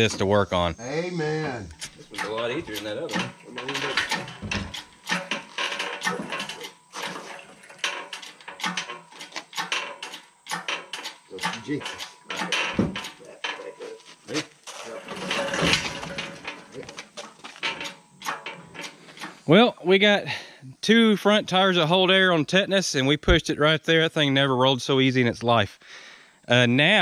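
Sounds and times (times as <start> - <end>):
metallic clicks and clanks: 1.7 - 19.6.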